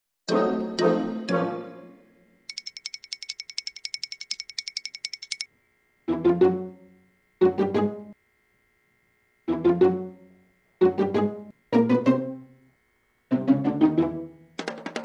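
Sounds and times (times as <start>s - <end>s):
pizzicato string chords: 0.3s - 2.1s, 6.1s - 6.7s, 7.4s - 8.1s, 9.5s - 10.2s, 10.8s - 12.6s, 13.3s - 15.0s
rapid ringing trill: 2.5s - 5.5s.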